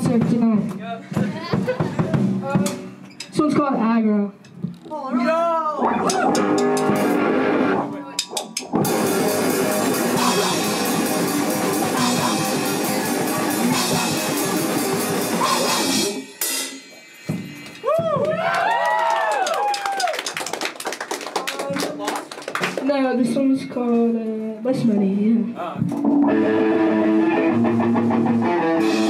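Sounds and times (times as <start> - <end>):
drum kit: 0.0 - 3.4, 5.8 - 18.8, 25.8 - 29.0
distorted electric guitar: 5.8 - 16.4, 25.9 - 29.0
sliding guitar notes: 5.9 - 16.2, 26.0 - 29.0.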